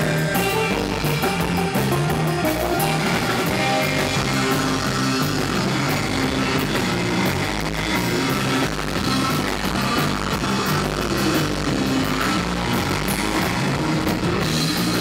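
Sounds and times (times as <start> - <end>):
surf rock band playing: 0.0 - 15.0.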